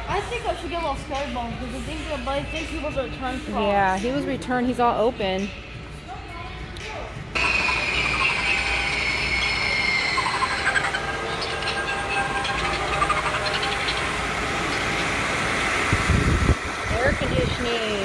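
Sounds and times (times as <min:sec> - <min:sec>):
fan blowing air: 0:00.0 - 0:18.0
falling whine: 0:07.4 - 0:18.0.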